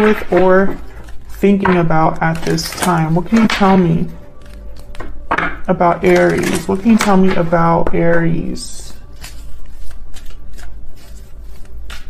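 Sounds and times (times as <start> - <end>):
cards being shuffled: 0.0 - 5.4, 8.8 - 12.0.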